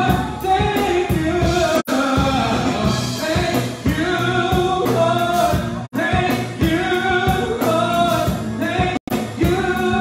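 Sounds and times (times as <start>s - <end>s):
man singing gospel song: 0.0s - 10.0s
musical accompaniment: 0.0s - 10.0s.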